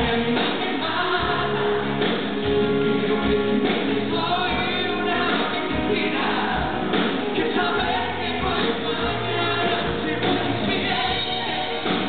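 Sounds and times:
man singing lead vocal: 0.0s - 12.0s
pop band with backing vocals: 0.0s - 12.0s.

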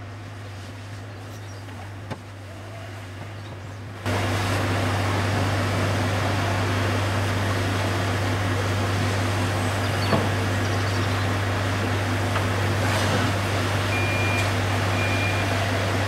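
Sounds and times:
fire truck engine humming: 0.0s - 16.0s.

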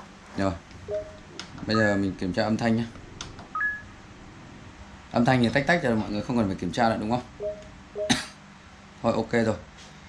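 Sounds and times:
two-note menu beeps: 0.9s - 1.2s, 7.4s - 8.1s.

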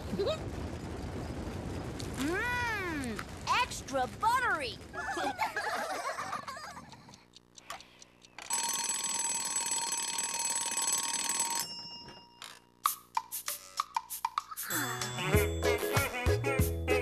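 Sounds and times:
sharp clicks: 6.9s - 8.5s
alarm clock ringing: 8.4s - 12.8s.

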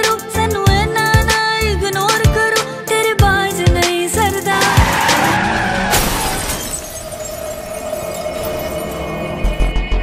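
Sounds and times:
tense drone score: 4.2s - 10.0s.

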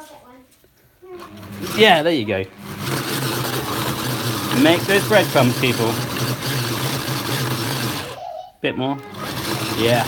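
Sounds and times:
electric food chopper running: 1.2s - 8.2s, 9.0s - 10.0s.

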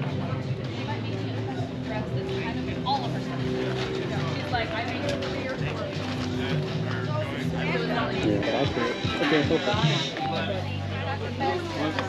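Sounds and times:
chatter of shoppers: 0.0s - 12.0s.

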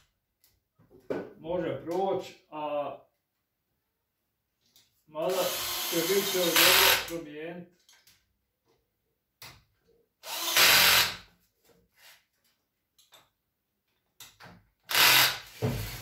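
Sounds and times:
cordless drill driving screws: 5.3s - 7.1s, 10.2s - 11.2s, 14.9s - 16.0s.

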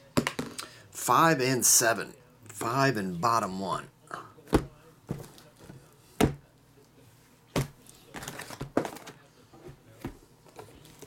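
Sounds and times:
cardboard boxes knocking on table: 4.5s - 6.4s.

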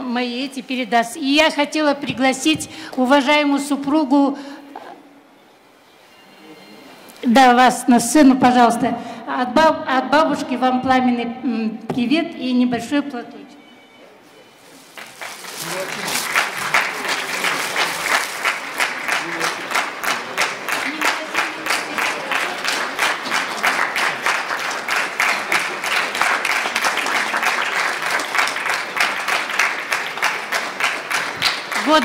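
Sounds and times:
audience applause: 14.8s - 32.0s.

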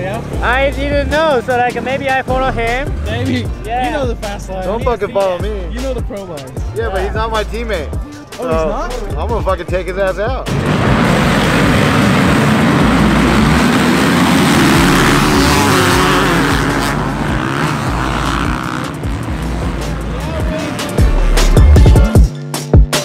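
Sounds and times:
dirt bike engines revving: 0.0s - 9.3s, 10.5s - 22.2s
music with a beat: 2.3s - 10.5s, 16.5s - 23.0s.

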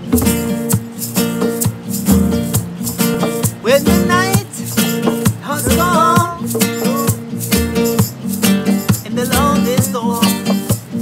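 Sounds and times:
acoustic guitar strumming: 0.0s - 11.0s
man singing: 3.6s - 8.1s, 8.9s - 10.8s.

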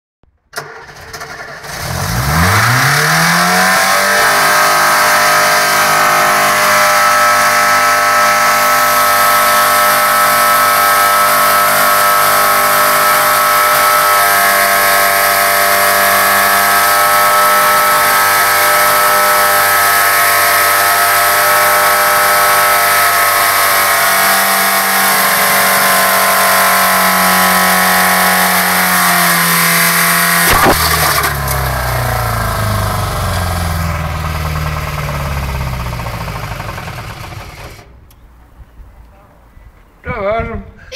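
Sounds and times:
engine revving high: 0.6s - 37.9s
sharp bang: 30.4s - 31.7s.

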